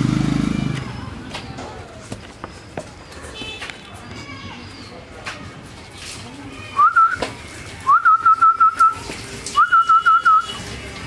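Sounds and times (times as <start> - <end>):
person whistling loudly: 7.9 - 9.0, 9.6 - 10.5.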